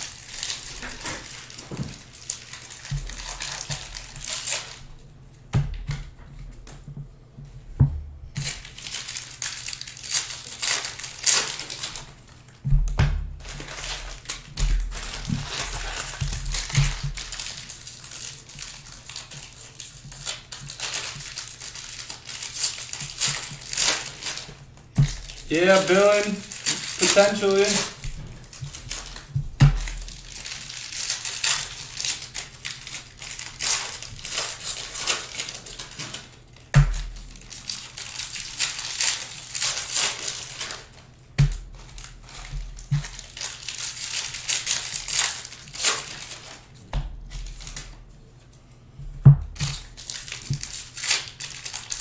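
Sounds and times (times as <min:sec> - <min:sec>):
foil wrappers crinkling: 0:00.0 - 0:05.1, 0:08.3 - 0:48.9, 0:49.5 - 0:52.0.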